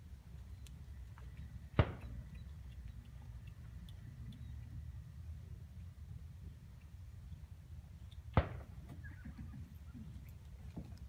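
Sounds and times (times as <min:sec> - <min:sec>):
steady low rumble: 0:00.0 - 0:08.9
faint scattered clicks: 0:00.2 - 0:05.0.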